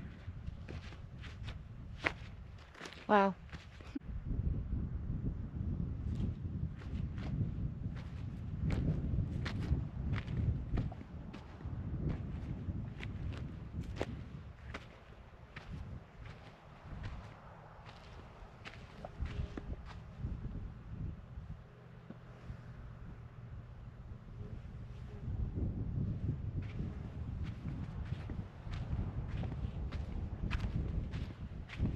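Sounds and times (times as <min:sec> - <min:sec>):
footsteps crunching on gravel: 0:14.8 - 0:20.0.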